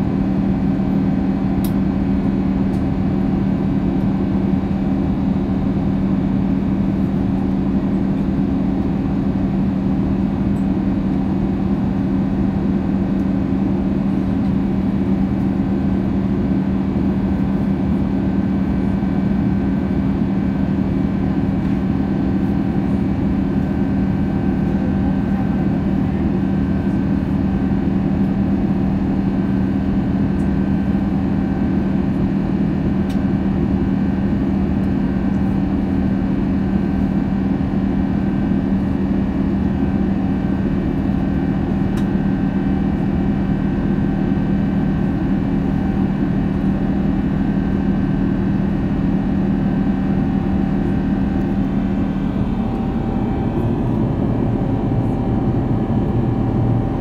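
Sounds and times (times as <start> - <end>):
airliner cabin drone: 0.0 - 57.0.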